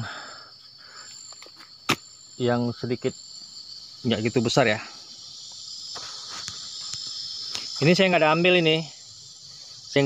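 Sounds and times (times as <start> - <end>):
forest insects droning: 0.0 - 10.0.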